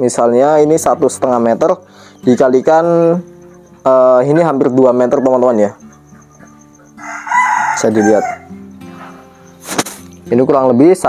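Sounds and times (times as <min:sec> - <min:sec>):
faint background music: 0:00.0 - 0:11.0
pheasant crowing: 0:01.9 - 0:10.2.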